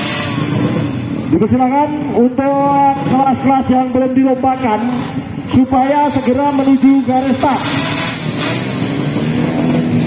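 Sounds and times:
motorcycle engines running: 0.0s - 10.0s.

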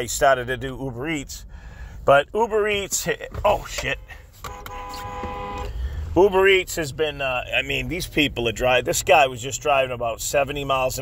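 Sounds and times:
low road rumble: 0.0s - 11.0s
car horn: 3.6s - 5.9s.

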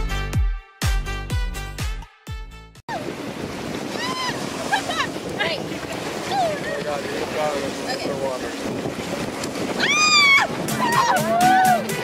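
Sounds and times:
surf lapping: 2.9s - 12.0s
wind buffeting microphone: 2.9s - 12.0s.

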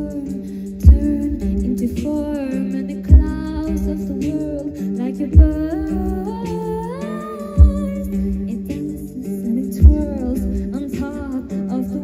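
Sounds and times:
woman singing into a microphone: 0.0s - 12.0s.

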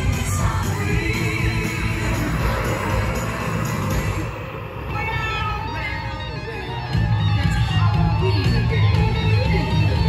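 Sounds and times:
loud parade music with heavy bass: 0.0s - 10.0s.

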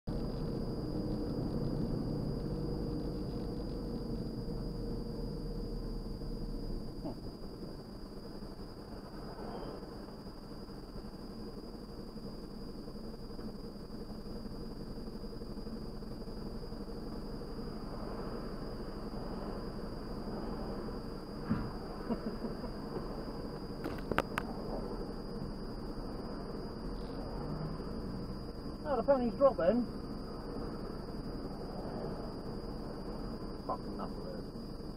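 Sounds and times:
car engine: 0.0s - 34.9s
road noise: 0.0s - 34.9s
high-pitched whine: 0.1s - 34.9s.

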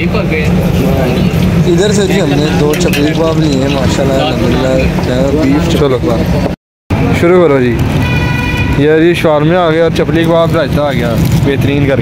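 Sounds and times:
steady background din: 0.0s - 12.0s.

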